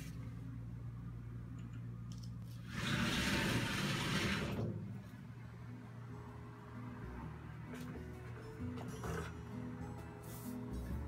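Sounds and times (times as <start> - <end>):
sliding shower door rolling open: 2.7 - 4.9.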